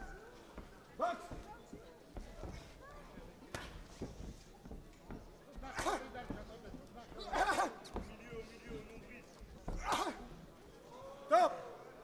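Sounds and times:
murmur of audience: 0.0 - 12.0.

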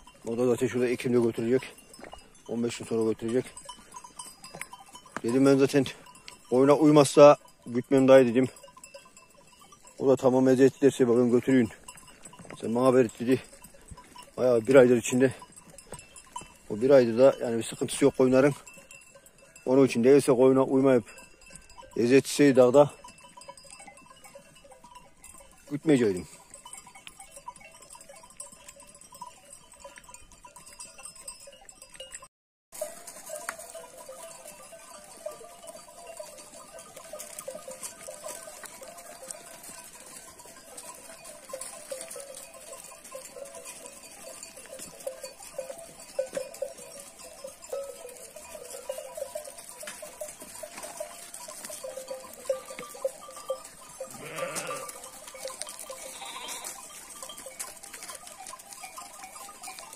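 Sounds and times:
sheep bells clanking: 0.0 - 59.9
sheep bleating high: 54.1 - 55.0, 55.9 - 56.8
sheep bleating low: 54.1 - 55.0, 56.0 - 56.8.

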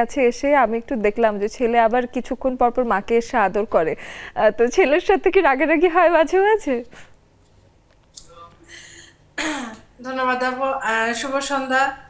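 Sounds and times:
person clearing throat: 8.3 - 9.9.

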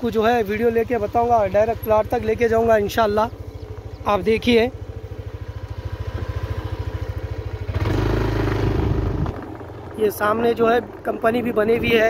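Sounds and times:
small motorcycle engine revving: 0.6 - 10.5.

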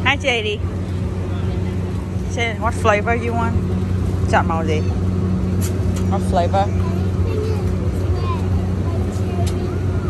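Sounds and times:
faint voices: 0.0 - 10.0
low machine hum: 0.0 - 10.0.

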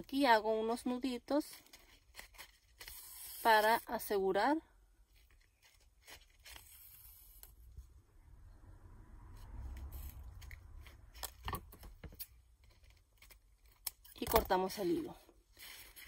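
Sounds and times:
ribbon and thread rustling: 0.0 - 7.9.

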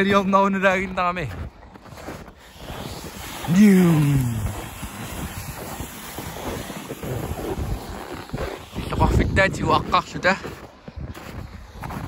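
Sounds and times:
wind buffeting microphone: 1.3 - 12.0.

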